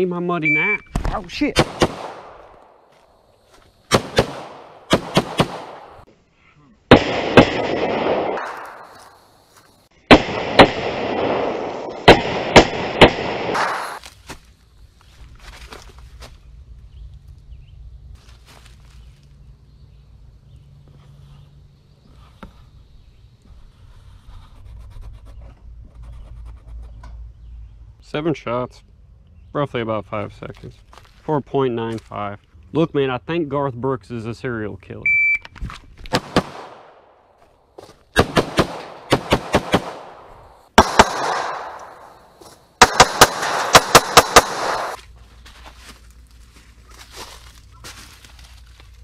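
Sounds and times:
pistol shots: 1.6 - 2.4, 3.9 - 6.0, 6.9 - 8.8, 10.1 - 14.0, 36.1 - 37.1, 38.2 - 42.1, 42.8 - 45.0.

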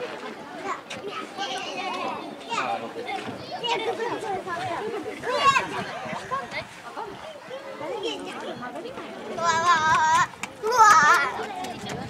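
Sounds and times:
adult chatter: 0.0 - 12.0
children shouting: 9.4 - 12.0.

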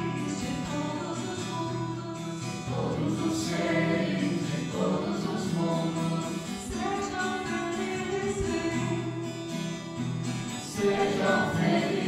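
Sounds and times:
group singing devotional song: 0.0 - 9.4, 10.4 - 12.0
strummed guitar: 0.0 - 12.0.

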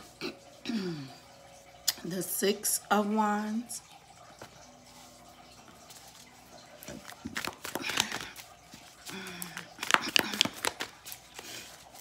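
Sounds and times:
cards clicking and rustling: 6.8 - 12.0.

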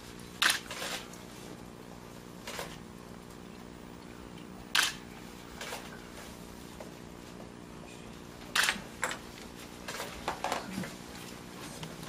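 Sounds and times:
camera shutter click: 0.4 - 0.7, 4.8 - 5.0, 8.5 - 8.8.

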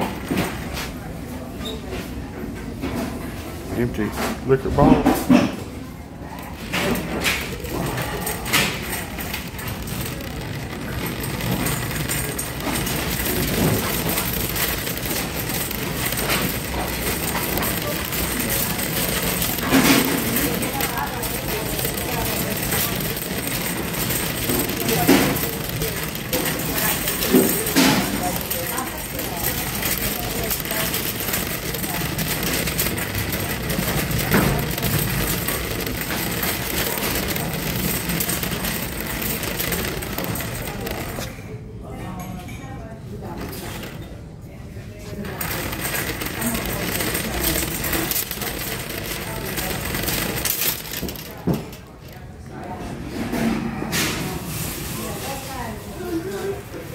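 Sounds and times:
shopping cart rattling: 6.5 - 41.5, 43.1 - 44.2, 45.0 - 53.3
cart knocking: 7.0 - 41.3, 45.4 - 51.8.

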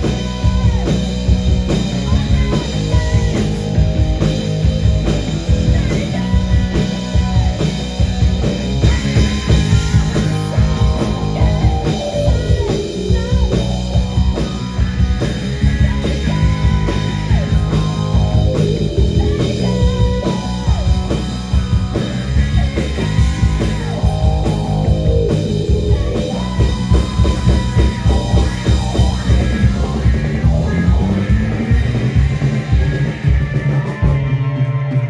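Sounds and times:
bass guitar: 0.0 - 35.0
drum kit: 0.0 - 35.0
electric guitar: 0.0 - 35.0
woman singing: 2.0 - 3.8, 5.5 - 7.7, 8.8 - 14.2.

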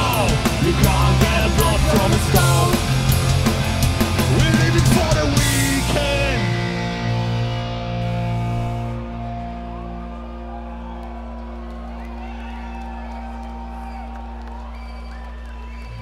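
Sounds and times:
rock band chord ringing: 0.0 - 10.7
crowd cheering and whooping: 8.9 - 16.0.

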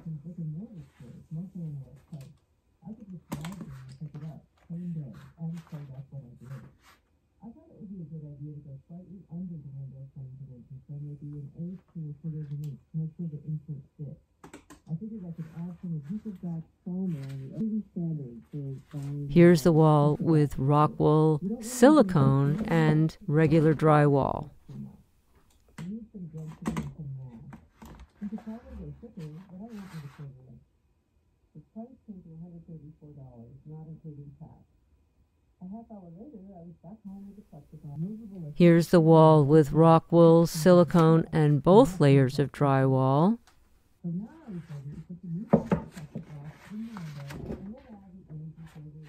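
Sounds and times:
muffled voice-like sound through wall: 0.0 - 22.7, 25.8 - 30.7, 31.5 - 34.7, 35.6 - 41.2, 44.0 - 49.0.

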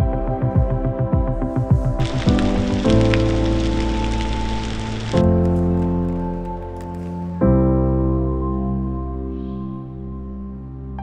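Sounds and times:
music of held chords: 0.0 - 11.0
heavy rain falling: 2.0 - 7.1.

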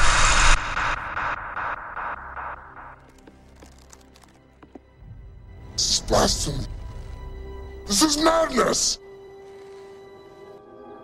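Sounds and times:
static-like noise burst: 0.0 - 4.3.

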